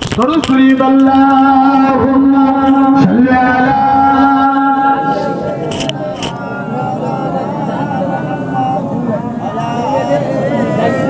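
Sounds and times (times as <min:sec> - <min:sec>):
man preaching into microphone: 0:00.0 - 0:05.5.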